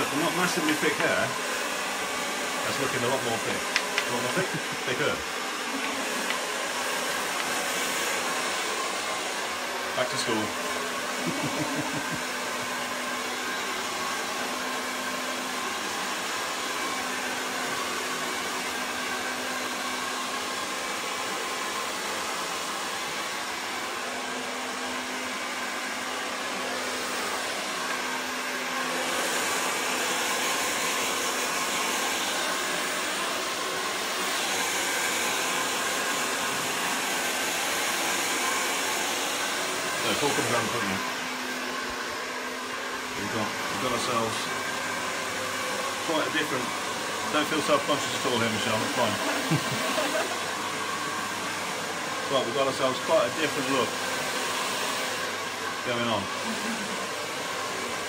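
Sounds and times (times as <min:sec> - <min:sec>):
hair dryer running: 0:00.0 - 0:58.0.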